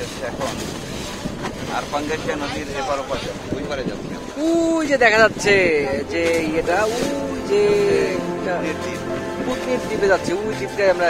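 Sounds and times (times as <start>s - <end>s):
water splashing along boat hull: 0.0s - 11.0s
wind buffeting microphone: 0.0s - 11.0s.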